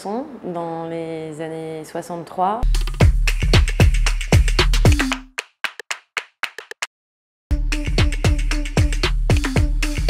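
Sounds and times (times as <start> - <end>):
background music: 2.6 - 5.3, 7.5 - 10.0
sharp hand claps: 3.6 - 6.9.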